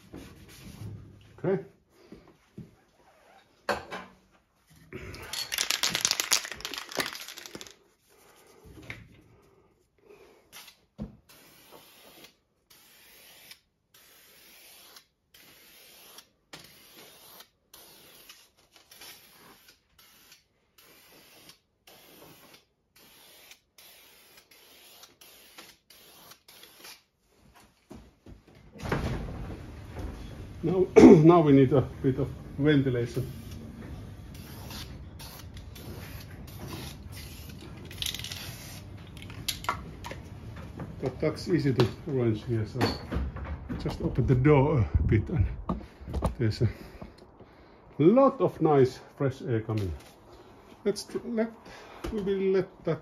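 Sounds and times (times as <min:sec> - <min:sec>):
aerosol can spraying: 0:34.3 - 0:37.6.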